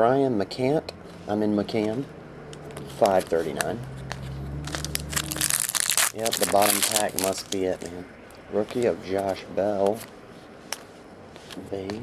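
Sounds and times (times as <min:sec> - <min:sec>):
foil wrapper crinkling: 0:03.0 - 0:08.0.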